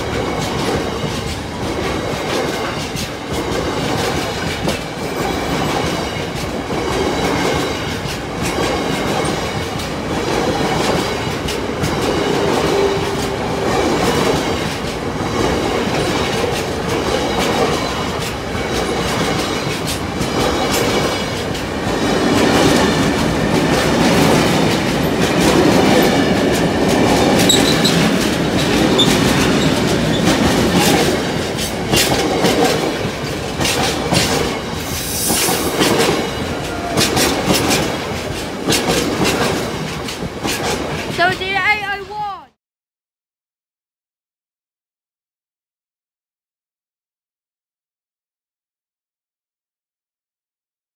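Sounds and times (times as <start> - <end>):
freight train rolling past: 0.0 - 42.3
wheels clattering clicks: 14.1 - 34.6.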